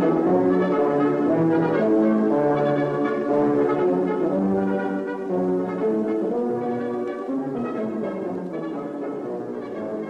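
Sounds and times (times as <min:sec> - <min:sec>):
brass chords: 0:00.0 - 0:10.0.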